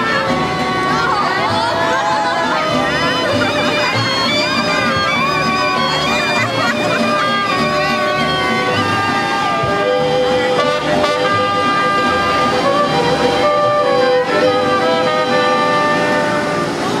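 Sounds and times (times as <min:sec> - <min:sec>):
strummed guitars: 0:00.0 - 0:17.0
trumpet playing melody: 0:00.0 - 0:17.0
violins playing melody: 0:00.0 - 0:17.0.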